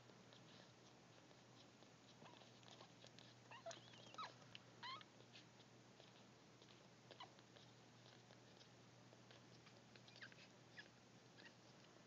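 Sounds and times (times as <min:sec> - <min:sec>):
puppies squeaking and whimpering: 0:00.3 - 0:08.7, 0:09.3 - 0:11.8.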